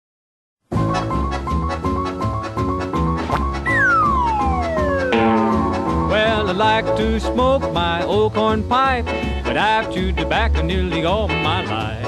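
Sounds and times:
western swing band playing: 0.8s - 12.0s
note sliding down in pitch: 3.6s - 6.7s.

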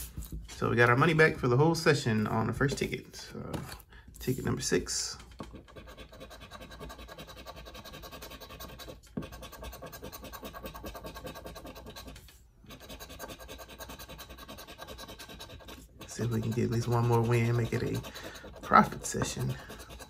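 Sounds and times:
coin scratching lottery ticket: 5.6s - 20.0s.

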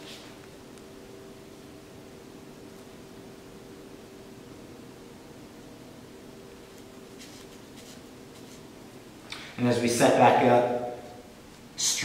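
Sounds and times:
hands rubbing skin: 7.1s - 8.7s.

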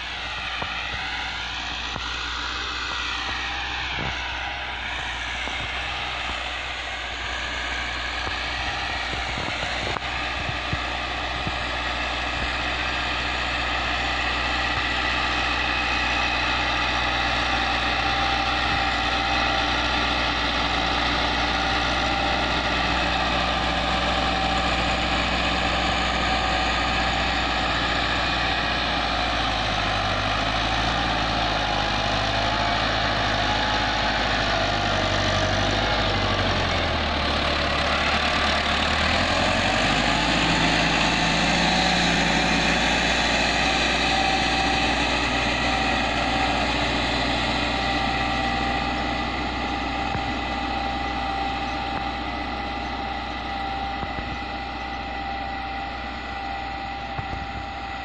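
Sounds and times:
tractor diesel engine under load: 0.0s - 58.0s.

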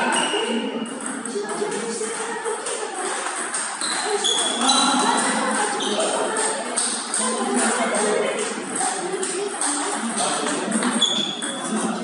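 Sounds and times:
table tennis ball ticking: 0.0s - 11.8s
hum of voices in a hall: 0.0s - 12.0s.

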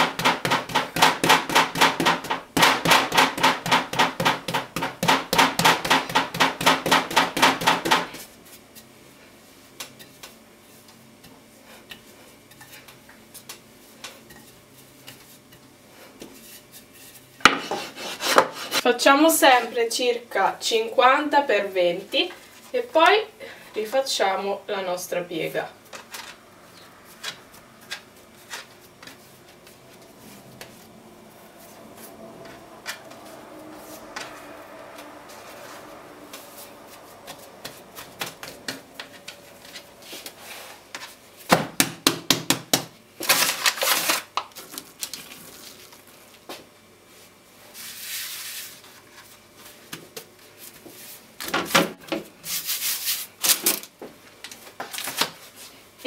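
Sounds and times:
baking paper rustling: 25.4s - 34.1s, 43.2s - 51.4s, 52.3s - 55.9s
hands rubbing dough: 26.8s - 41.5s.

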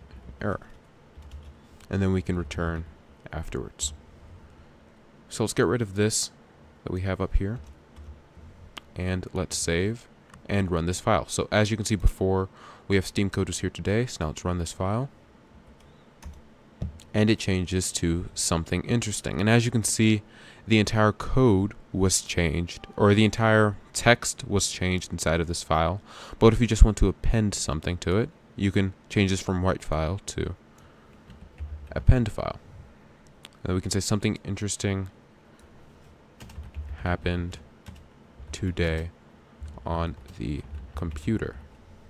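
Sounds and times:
keyboard typing: 0.2s - 1.6s, 36.4s - 37.0s.

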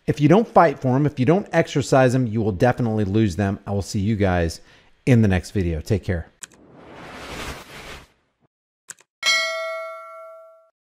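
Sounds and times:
notification bell chime: 9.2s - 10.7s.

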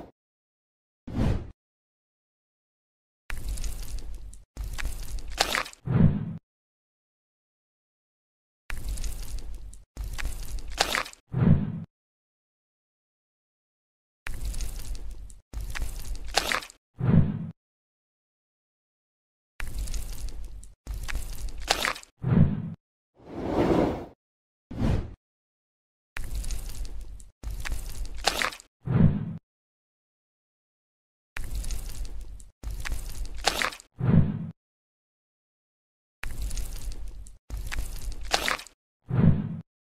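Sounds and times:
crackly squishy bursts: 3.3s - 5.8s, 8.7s - 11.2s, 14.3s - 16.8s, 19.6s - 22.1s, 26.2s - 28.7s, 31.4s - 33.9s, 36.2s - 38.8s.

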